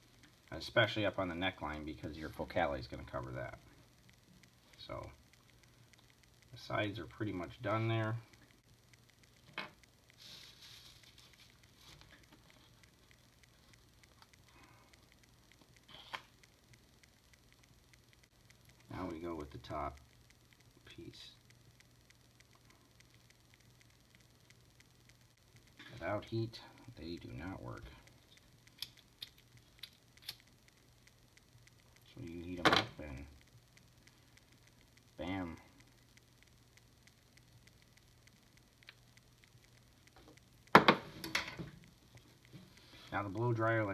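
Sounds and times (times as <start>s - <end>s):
soft plastic rustle: 10.1s - 13.9s.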